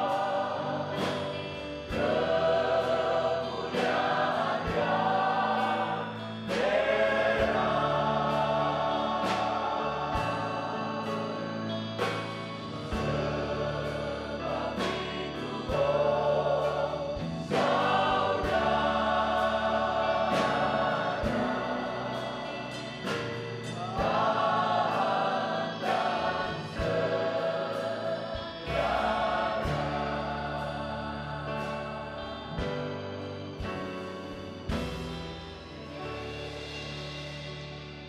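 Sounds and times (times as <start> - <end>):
choir singing gospel song: 0.0 - 38.0
instrumental accompaniment: 0.0 - 38.0.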